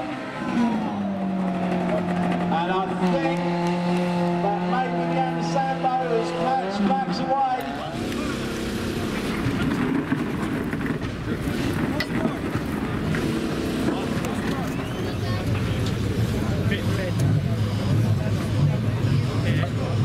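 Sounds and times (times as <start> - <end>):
car engines running: 0.0 - 20.0
indistinct voices chattering: 11.2 - 20.0.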